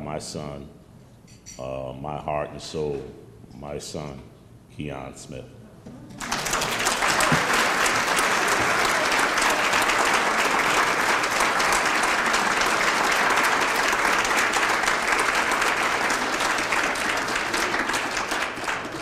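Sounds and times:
audience applauding: 6.2s - 19.0s.

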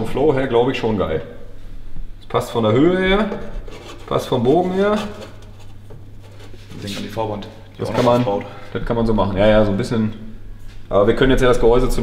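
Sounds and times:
steady low hum: 0.0s - 12.0s
man talking: 4.1s - 5.3s, 6.7s - 10.3s, 10.9s - 12.0s.

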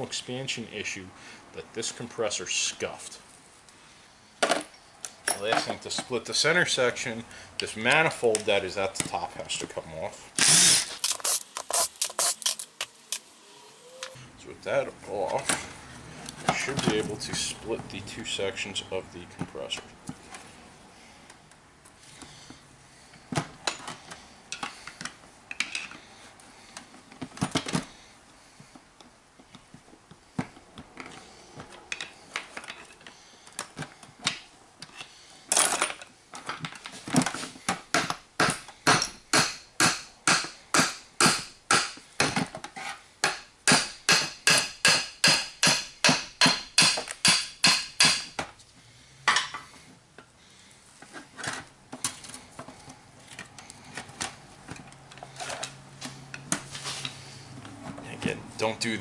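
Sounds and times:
hammer striking metal: 38.4s - 42.0s, 43.2s - 48.3s.

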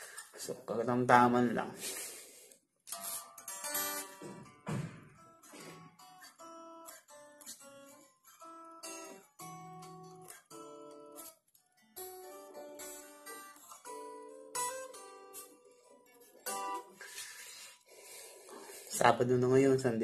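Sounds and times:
unamplified electric guitar playing: 2.9s - 17.7s.

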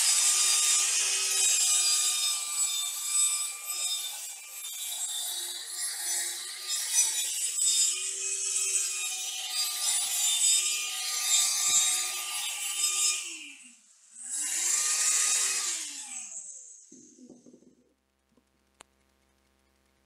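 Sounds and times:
angle grinder grinding steel: 0.0s - 17.6s
grinder spinning up and running free: 0.0s - 17.8s
grinder motor winding down: 14.2s - 17.5s.

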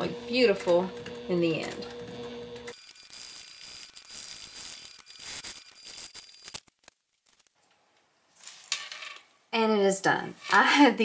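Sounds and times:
sewing machine whining: 1.0s - 6.6s.

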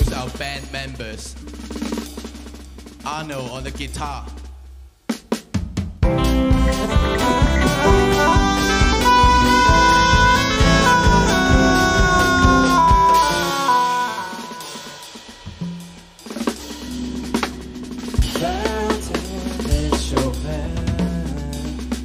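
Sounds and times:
improvising band: 0.0s - 22.0s
held bending lead note: 6.0s - 15.5s.

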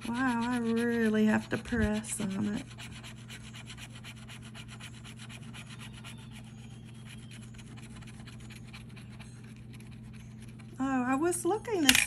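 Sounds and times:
lottery ticket being scratched: 0.0s - 10.8s.

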